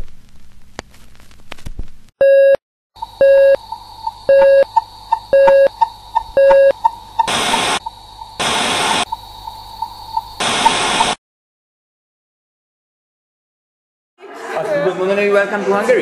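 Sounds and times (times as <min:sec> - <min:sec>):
crackle: 0:00.0 - 0:02.1, 0:03.0 - 0:11.2
electronic beeps: 0:02.2 - 0:11.2
fast ticking: 0:03.0 - 0:10.8
static hiss bursts: 0:03.0 - 0:11.2
thin high whine: 0:03.0 - 0:11.2.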